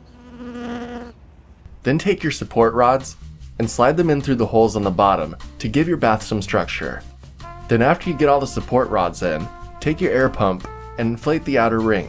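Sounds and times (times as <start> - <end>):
fly buzzing: 0.0 - 1.2.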